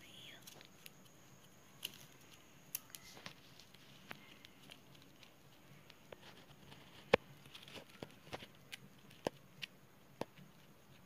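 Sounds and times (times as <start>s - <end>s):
plastic wire rustling: 0.4s - 9.7s.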